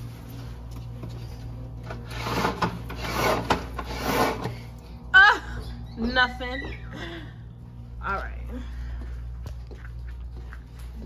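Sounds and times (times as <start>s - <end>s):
fabric roller shade rasping: 2.0s - 4.6s.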